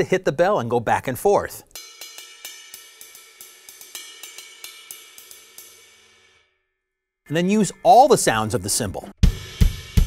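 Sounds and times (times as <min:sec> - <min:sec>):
ride cymbal struck with drumstick: 0:01.7 - 0:06.5.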